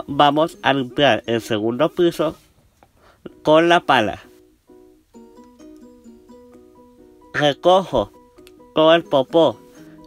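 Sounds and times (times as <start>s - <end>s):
plucked string background music: 0.0s - 2.5s, 3.2s - 10.0s.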